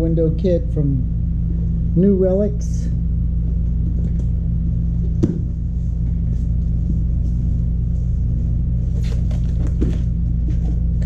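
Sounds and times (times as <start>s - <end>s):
low hum of shop equipment: 0.0s - 11.0s.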